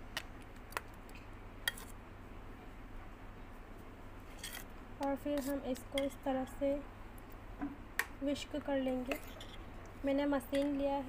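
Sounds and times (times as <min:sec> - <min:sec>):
spoon scraping a bowl: 0:01.7 - 0:02.0, 0:04.3 - 0:04.7.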